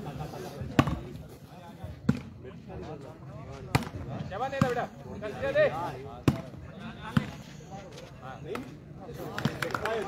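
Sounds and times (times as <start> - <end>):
volleyball struck by hand: 6.2 - 6.6.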